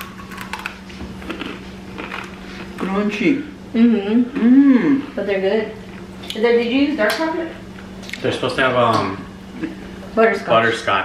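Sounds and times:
biting crunchy cookie: 0:00.0 - 0:02.8
crisp chewing crunches: 0:00.0 - 0:02.9.

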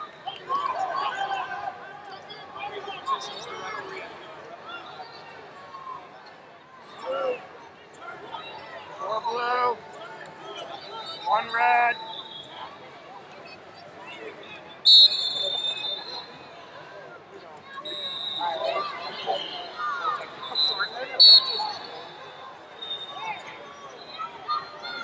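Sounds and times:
crowd chatter and shouts: 0:00.0 - 0:25.0
referee's whistle blasts: 0:11.1 - 0:12.6, 0:14.8 - 0:16.4, 0:17.8 - 0:19.8, 0:20.4 - 0:23.5.

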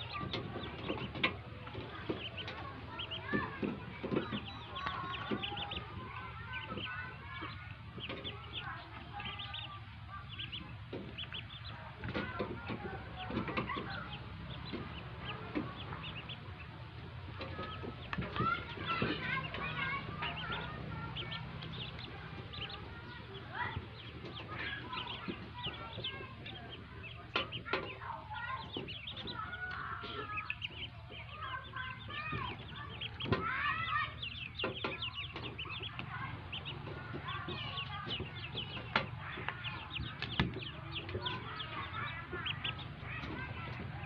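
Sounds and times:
ducklings peeping: 0:00.0 - 0:44.0.

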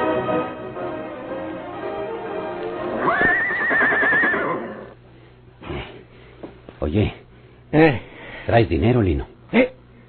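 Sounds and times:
orchestral music: 0:00.0 - 0:03.6
horse whinnying: 0:03.0 - 0:05.0.

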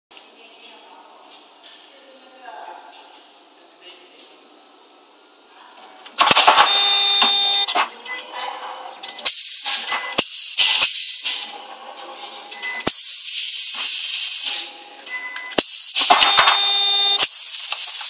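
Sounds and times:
machine clattering whir: 0:06.1 - 0:07.9, 0:15.3 - 0:18.0
pneumatic clacks: 0:09.1 - 0:11.5, 0:15.4 - 0:18.0
compressed air hiss: 0:09.3 - 0:11.4, 0:12.9 - 0:14.6, 0:15.6 - 0:16.1, 0:17.2 - 0:18.0.

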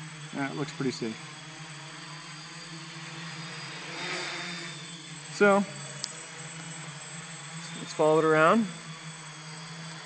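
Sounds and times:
quadcopter propellers buzzing: 0:00.0 - 0:10.0.

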